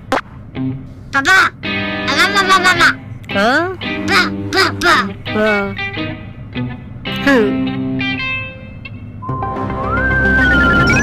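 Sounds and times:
background music: 0.0s - 11.0s
cartoon character vocalizing: 1.2s - 3.0s, 4.0s - 5.8s.

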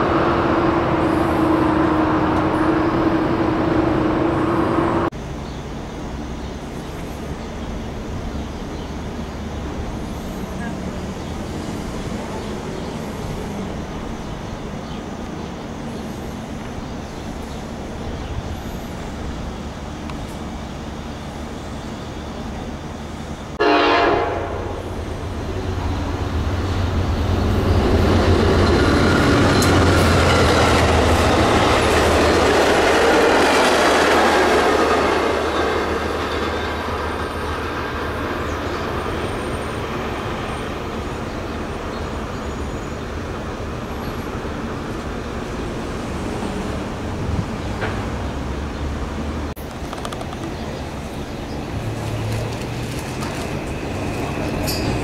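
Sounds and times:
train passing with wheel noise: 0.0s - 55.0s
train horn blast: 23.6s - 24.8s.

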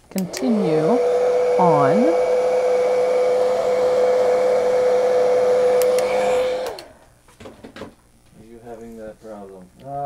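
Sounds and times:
hot-air dryer whirring: 0.0s - 7.9s.

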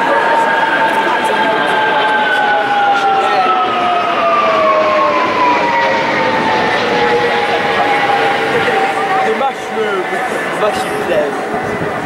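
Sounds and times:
jet aircraft flying overhead: 0.0s - 12.0s.

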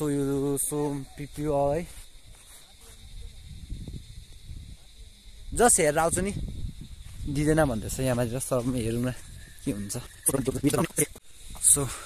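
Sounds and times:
young man speaking: 0.0s - 2.0s, 5.5s - 6.4s, 7.2s - 12.0s
wind rumble on microphone: 2.9s - 11.8s.

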